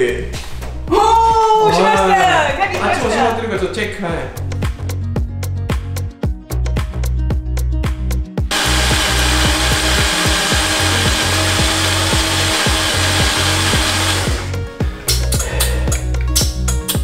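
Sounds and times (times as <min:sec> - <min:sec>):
background music with beat: 0:00.0 - 0:17.0
power tool running: 0:08.5 - 0:14.6.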